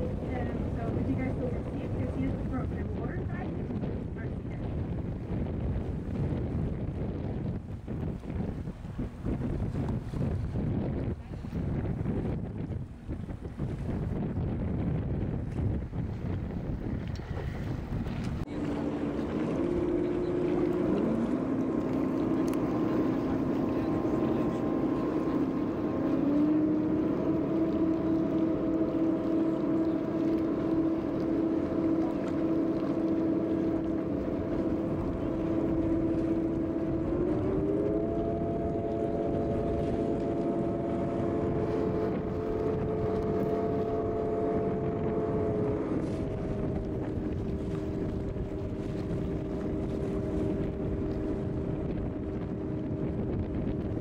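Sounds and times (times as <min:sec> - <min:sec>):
boat engine running: 0:00.0 - 0:54.0
rush of water and air: 0:00.0 - 0:54.0
wind buffeting microphone: 0:00.0 - 0:54.0.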